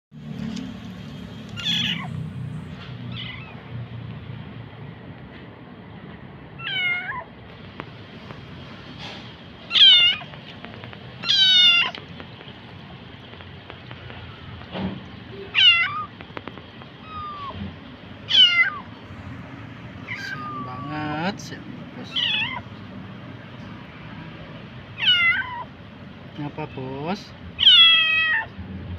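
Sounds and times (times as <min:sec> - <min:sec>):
kitten meowing loudly: 0:01.6 - 0:02.1, 0:06.6 - 0:07.3, 0:09.7 - 0:10.3, 0:11.2 - 0:12.0, 0:15.5 - 0:16.1, 0:17.0 - 0:17.6, 0:18.3 - 0:18.9, 0:20.1 - 0:20.8, 0:22.1 - 0:22.6, 0:25.0 - 0:25.7, 0:27.6 - 0:28.5.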